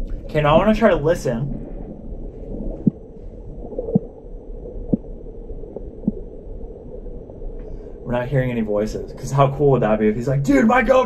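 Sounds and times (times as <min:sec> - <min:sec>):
muffled rumble of water: 0:00.0 - 0:11.0.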